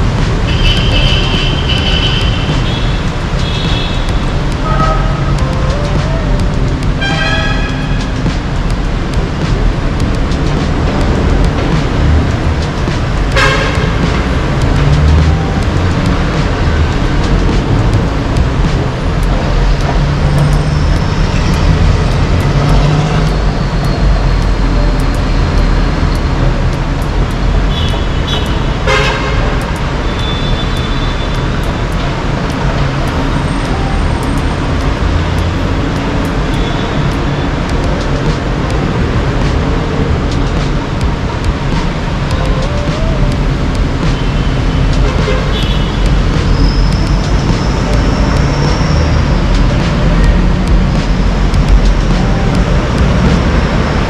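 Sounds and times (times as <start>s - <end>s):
road traffic noise: 0.0s - 54.0s
vehicle horn toots: 7.0s - 8.0s, 13.4s - 14.0s, 27.7s - 29.5s.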